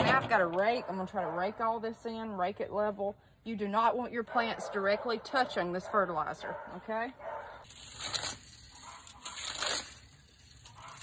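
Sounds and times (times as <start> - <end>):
rake scraping through soil: 7.3 - 11.0.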